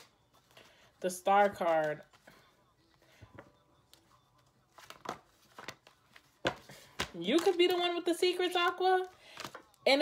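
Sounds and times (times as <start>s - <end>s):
cards being shuffled: 3.3s - 9.8s.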